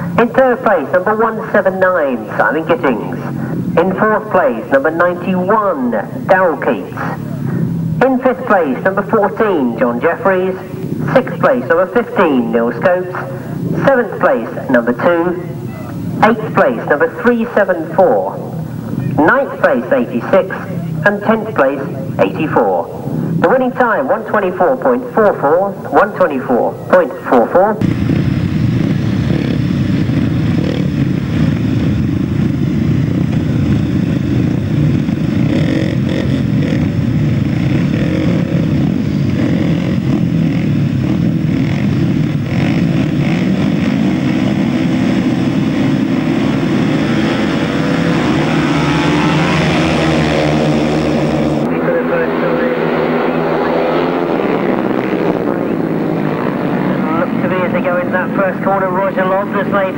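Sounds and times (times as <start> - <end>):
motorcycles revving: 0.0 - 59.9.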